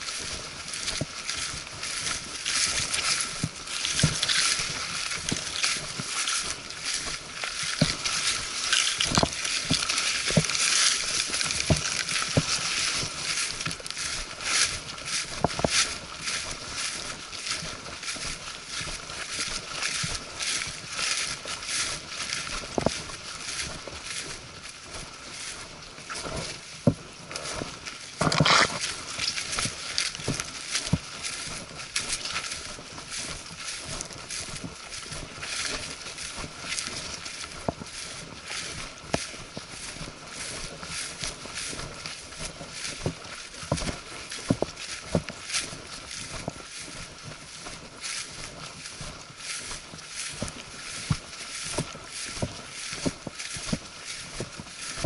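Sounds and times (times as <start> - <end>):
footsteps through undergrowth: 0.0 - 55.0
leaves and brush rustling: 0.0 - 55.0.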